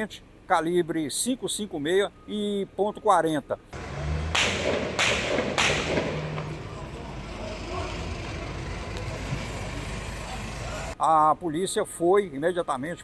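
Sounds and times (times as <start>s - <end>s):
low rumble of vehicles: 0.0s - 11.0s.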